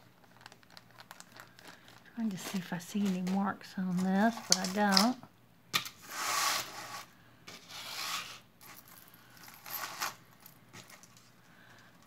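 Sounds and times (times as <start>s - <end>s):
metal chain links clinking: 8.6s - 10.6s.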